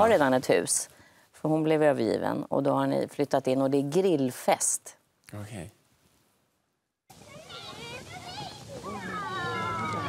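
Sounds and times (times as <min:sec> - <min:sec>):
children calling out: 0:07.1 - 0:10.0.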